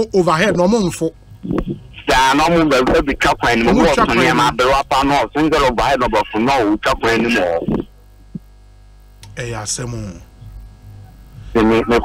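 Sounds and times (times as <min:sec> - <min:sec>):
person speaking: 0:00.0 - 0:08.4
electrical mains hum: 0:00.0 - 0:12.0.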